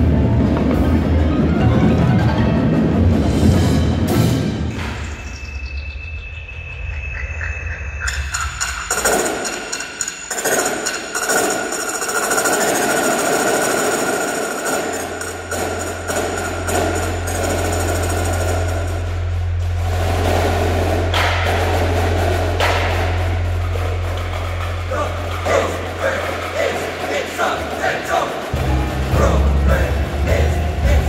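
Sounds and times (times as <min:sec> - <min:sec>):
sharp percussive hits: 0:08.0 - 0:29.6
deep bass drone: 0:15.4 - 0:26.6, 0:28.6 - 0:31.0.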